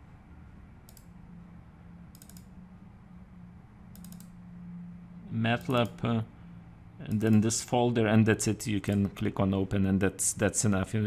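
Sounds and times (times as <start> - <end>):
faint low hum: 0.0 - 11.0
computer mouse clicking: 0.9 - 1.2, 2.1 - 2.5, 3.9 - 4.4.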